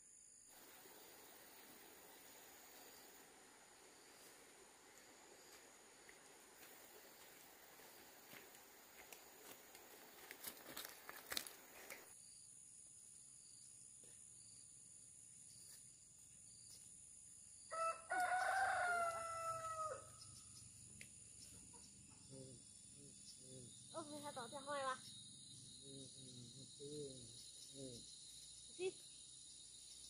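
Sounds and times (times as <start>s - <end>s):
insect drone: 0.0s - 30.0s
footsteps on stony path: 5.0s - 12.1s
rooster crowing: 17.7s - 20.2s.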